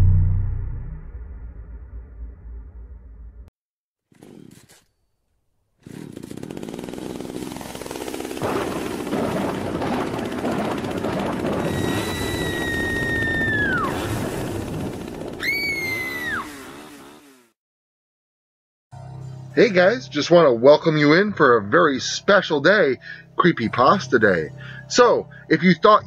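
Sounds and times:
harsh noisy rumble: 0:00.0 - 0:03.5, 0:08.3 - 0:15.4
rising and falling high tone: 0:00.0 - 0:03.5.

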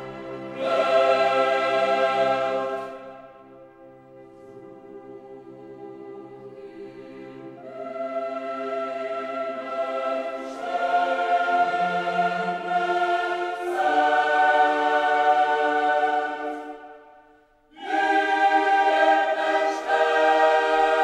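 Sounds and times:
choir singing held chords: 0:00.0 - 0:21.0.

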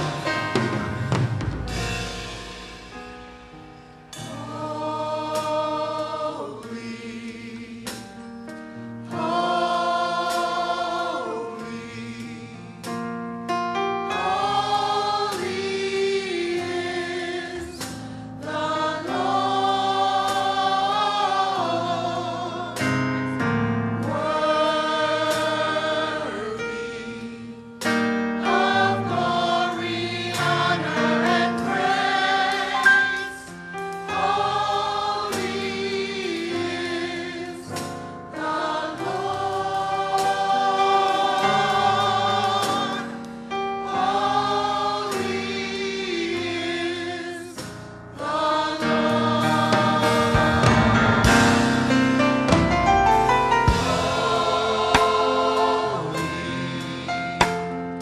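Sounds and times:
church choir singing: 0:00.0 - 0:58.0.

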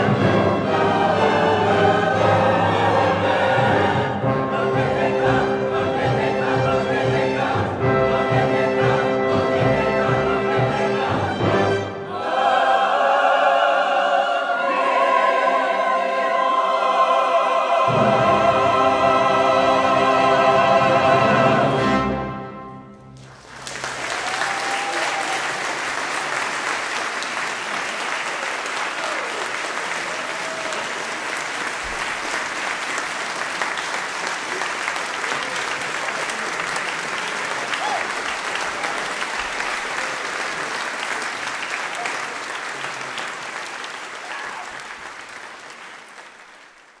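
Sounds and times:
choral and orchestral chord: 0:00.0 - 0:23.2
audience applauding: 0:23.2 - 0:47.0.

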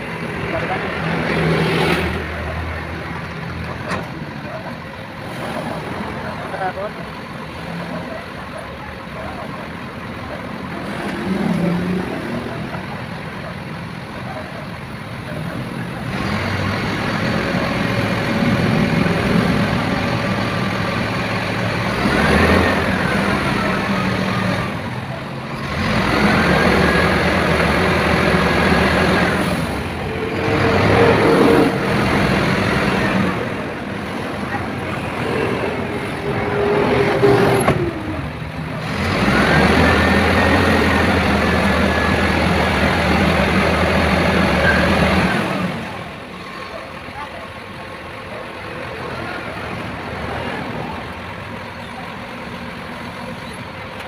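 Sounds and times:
people talking: 0:00.0 - 0:54.0
truck engine running: 0:00.0 - 0:54.0.

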